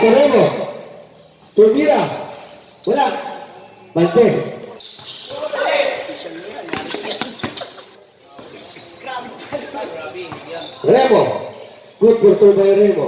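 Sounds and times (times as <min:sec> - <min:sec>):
voices calling out: 0:00.0 - 0:13.0
basketball bouncing on court floor: 0:06.6 - 0:07.8.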